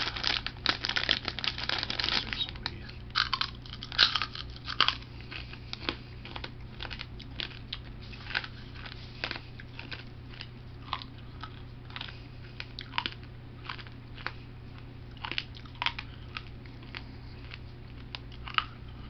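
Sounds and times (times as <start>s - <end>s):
person chewing crunchy food: 0.0s - 19.0s
steady low hum: 0.0s - 19.0s.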